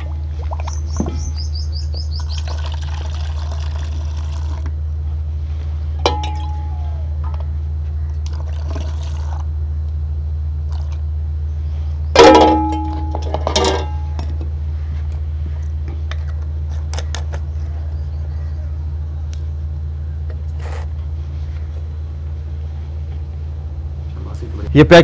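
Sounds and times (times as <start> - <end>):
steady low hum: 0.0 - 25.0
steel mug clanking in pot: 6.1 - 6.7, 12.2 - 14.2.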